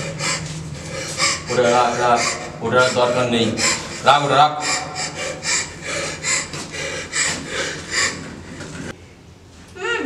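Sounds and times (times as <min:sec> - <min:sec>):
person panting rapidly: 0:00.0 - 0:08.9.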